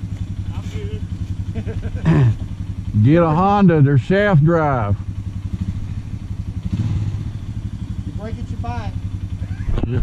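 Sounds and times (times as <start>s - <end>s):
quad engine running: 0.0s - 10.0s.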